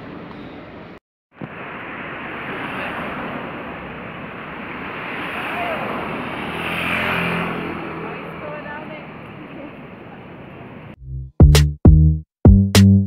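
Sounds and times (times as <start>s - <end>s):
steady road hiss: 0.0s - 11.0s
car passing close: 1.4s - 11.0s.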